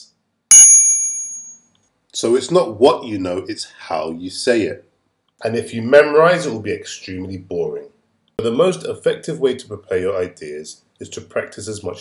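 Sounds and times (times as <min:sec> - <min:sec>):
bright bell-like ding: 0:00.5 - 0:01.7.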